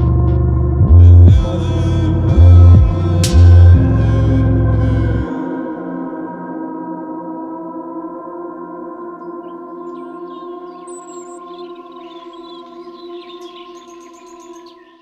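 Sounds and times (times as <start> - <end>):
sustained music chord: 0.0 - 13.8
high chirping: 9.2 - 15.0.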